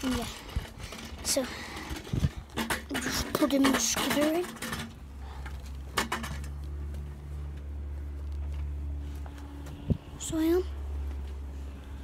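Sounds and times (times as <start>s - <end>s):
steady low rumble: 4.9s - 12.0s.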